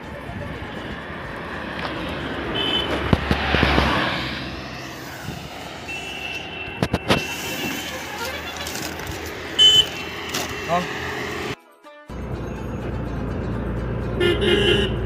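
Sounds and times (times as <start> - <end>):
vehicle passing on highway: 0.0 - 15.0.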